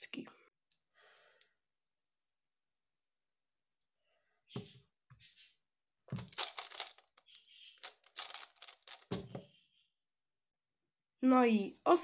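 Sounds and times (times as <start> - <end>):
plastic puzzle clicking when turned: 6.2 - 9.2.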